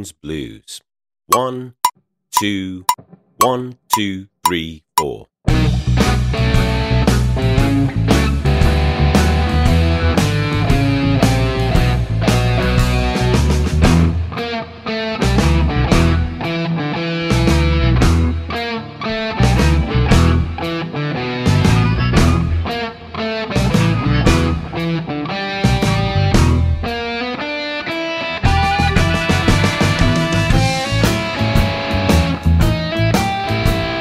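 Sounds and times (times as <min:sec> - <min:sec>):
bass: 0:03.5 - 0:14.4, 0:15.2 - 0:16.4, 0:17.3 - 0:18.5, 0:19.3 - 0:20.7, 0:21.4 - 0:22.7, 0:23.6 - 0:24.8, 0:25.6 - 0:26.9, 0:28.4 - 0:34.0
electric guitar blues: 0:05.6 - 0:34.0.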